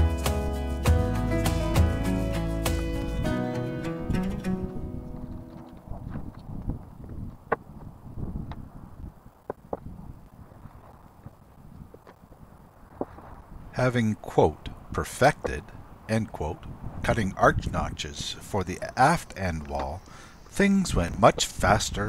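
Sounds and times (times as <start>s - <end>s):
background music: 0.0s - 5.6s.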